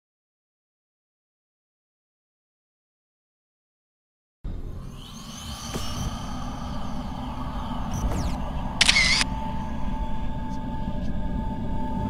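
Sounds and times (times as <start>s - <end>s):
low drone: 4.5s - 12.0s
bright noise burst: 4.7s - 10.0s.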